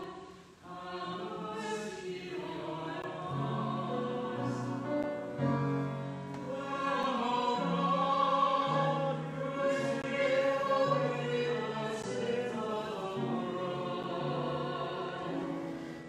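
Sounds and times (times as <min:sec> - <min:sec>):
choir singing sacred music: 0:00.0 - 0:16.0.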